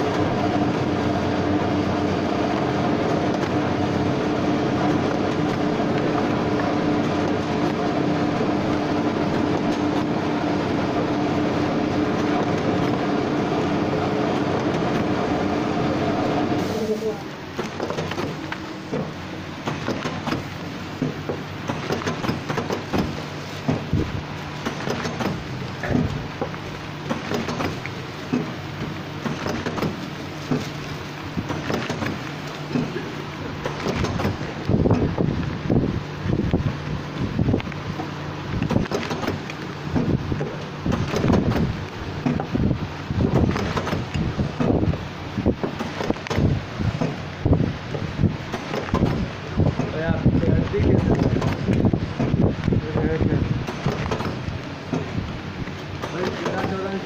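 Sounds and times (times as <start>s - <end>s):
packing machine humming and clattering: 0.0s - 57.0s.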